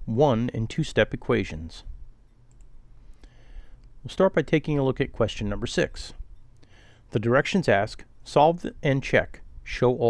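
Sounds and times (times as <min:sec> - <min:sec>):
low steady hum: 0:00.0 - 0:10.0
computer mouse clicks: 0:02.5 - 0:02.7.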